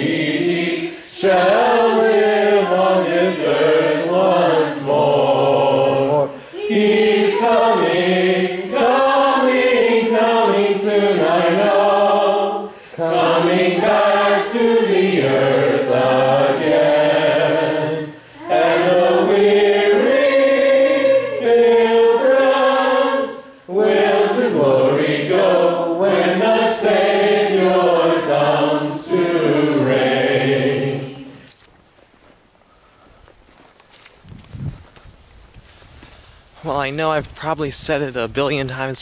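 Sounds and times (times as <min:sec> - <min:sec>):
choir singing: 0:00.0 - 0:31.5.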